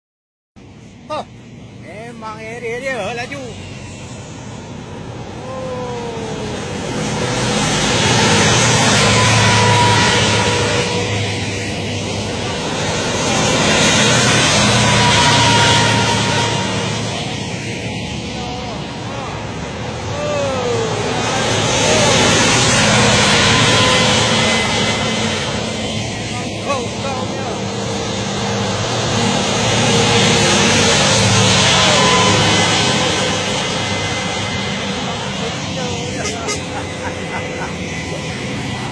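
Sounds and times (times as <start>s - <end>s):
tanks driving past: 0.6s - 38.9s.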